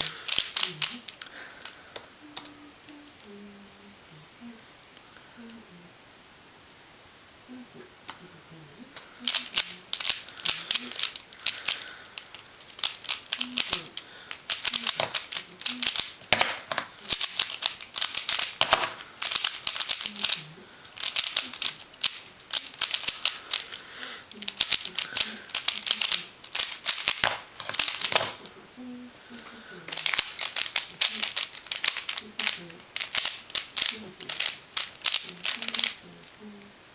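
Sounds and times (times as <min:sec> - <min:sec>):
plastic puzzle cube clicking: 0:00.0 - 0:03.3, 0:08.9 - 0:28.5, 0:29.3 - 0:36.4.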